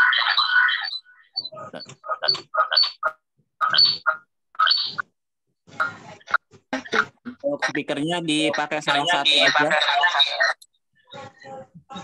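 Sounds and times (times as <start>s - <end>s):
garbled voice through video call: 1.4s - 4.3s, 5.7s - 12.0s.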